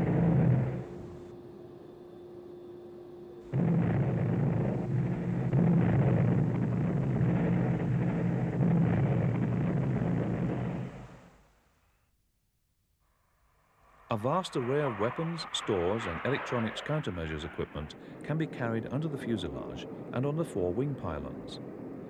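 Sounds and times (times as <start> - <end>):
aircraft cannon firing bursts: 3.5 - 11.2.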